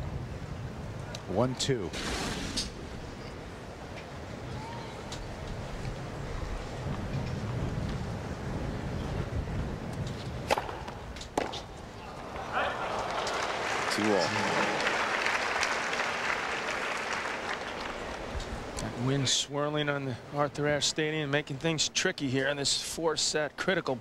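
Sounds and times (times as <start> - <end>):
tennis ball struck by racket: 10.4 - 11.6
crowd applause and cheering: 12.2 - 18.4.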